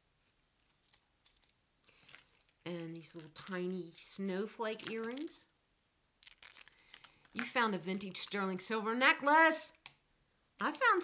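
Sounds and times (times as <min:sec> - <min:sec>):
small metal jewelry clinking: 0:00.6 - 0:04.0.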